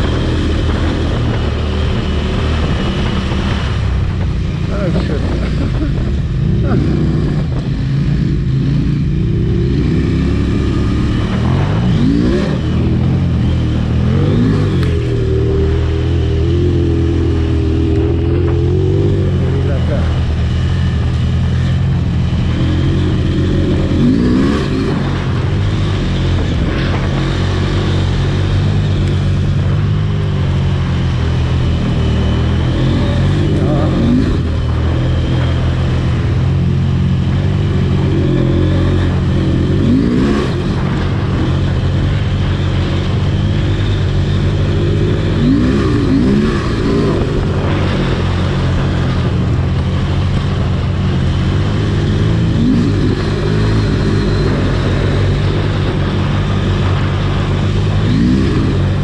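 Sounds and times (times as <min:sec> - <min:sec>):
motorcycle engine revving: 0:00.0 - 0:59.0
wind noise: 0:00.0 - 0:59.0.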